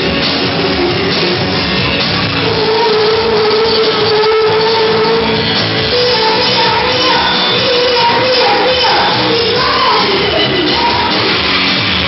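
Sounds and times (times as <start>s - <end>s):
pop backing track: 0.0s - 12.0s
child singing a long note: 2.4s - 11.3s.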